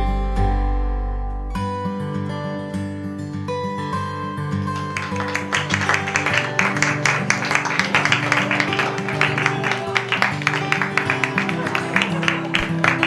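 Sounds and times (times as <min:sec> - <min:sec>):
strummed acoustic guitar: 0:00.0 - 0:13.0.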